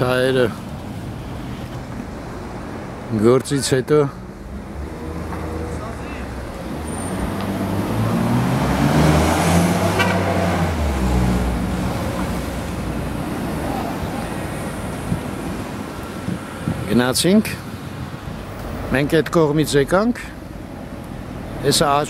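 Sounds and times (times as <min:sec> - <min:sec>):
traffic noise: 0:00.0 - 0:22.0
vehicle passing by: 0:04.3 - 0:16.8.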